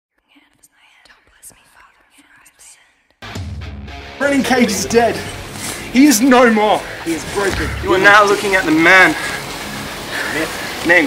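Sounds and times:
faint whispering voices: 0.1s - 3.0s.

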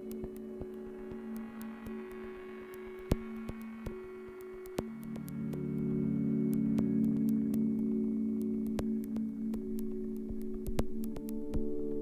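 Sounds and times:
electronic sine drone: 0.0s - 12.0s.

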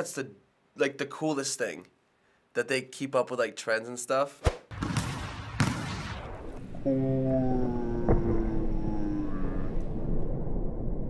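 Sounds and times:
basketball thud on gym floor: 4.8s - 5.9s
held note sinking in pitch: 6.7s - 10.0s.

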